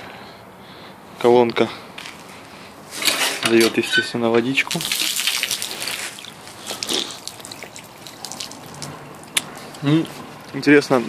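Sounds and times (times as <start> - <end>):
water gushing onto paving stones: 4.6 - 9.8.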